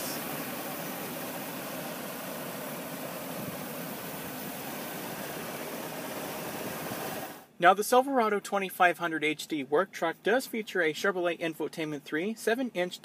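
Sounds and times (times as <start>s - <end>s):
truck engine idling: 0.0s - 7.4s.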